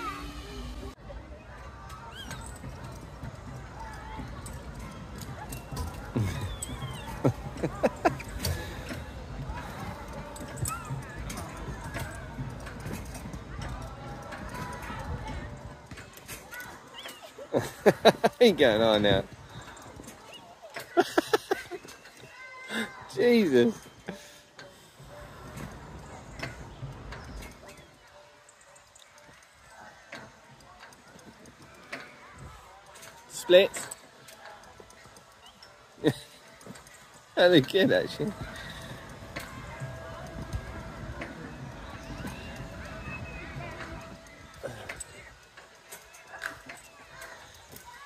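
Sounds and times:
faint voices: 0:00.0 - 0:48.0.

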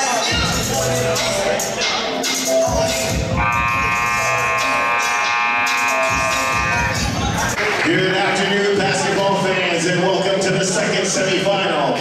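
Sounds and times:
scoreboard buzzer: 0:03.4 - 0:07.2.

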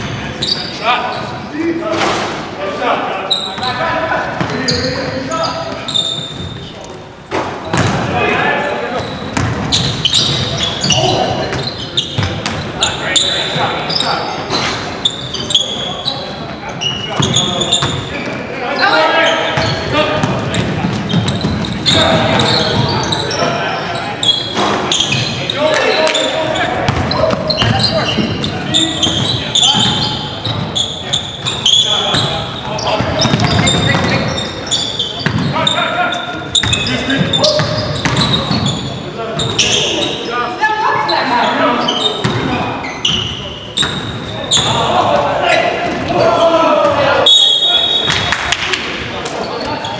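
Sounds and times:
sneakers squeaking: 0:00.0 - 0:02.5, 0:03.1 - 0:49.9
players' indistinct voices calling: 0:00.0 - 0:49.9.

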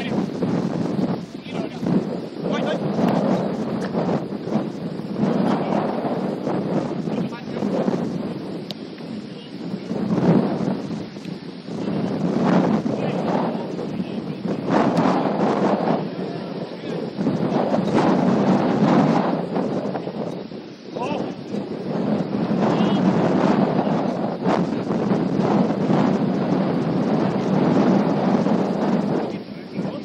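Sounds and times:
wind buffeting microphone: 0:00.0 - 0:30.0
indistinct voices: 0:19.8 - 0:21.7.

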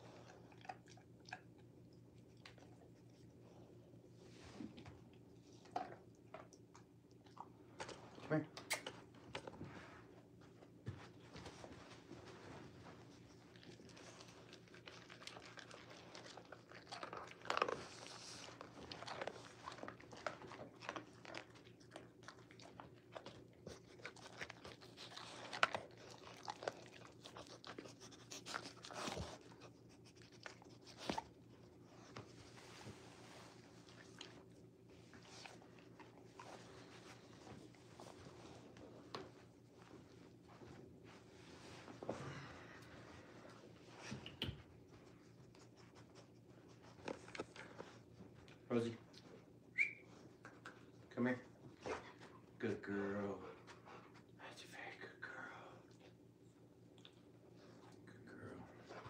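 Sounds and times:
dog chewing and crunching food: 0:00.0 - 0:59.0
low steady hum: 0:00.0 - 0:59.0.

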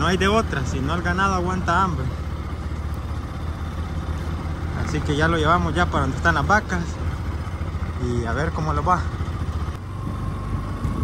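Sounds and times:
vehicle engine running low drone: 0:00.0 - 0:11.0.

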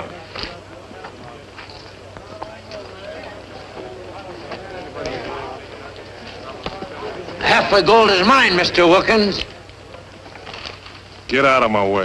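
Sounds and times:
murmur of men's voices: 0:00.0 - 0:12.0.

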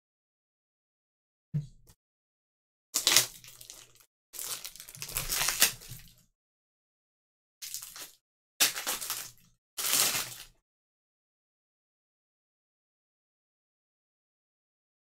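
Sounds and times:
foil packs crinkling and tearing: 0:03.0 - 0:06.2, 0:07.6 - 0:10.6.

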